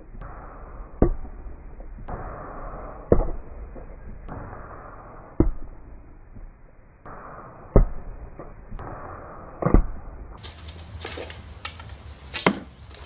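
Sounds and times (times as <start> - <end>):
arrows thudding into target: 9.6 - 13.0
knife sticking into wooden target: 10.5 - 13.0.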